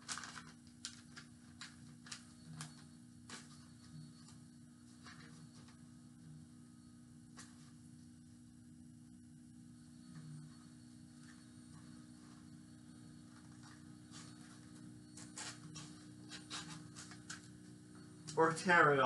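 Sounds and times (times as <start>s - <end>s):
paper rustling: 0.0s - 6.0s, 13.3s - 17.5s
low electrical hum: 0.0s - 19.0s.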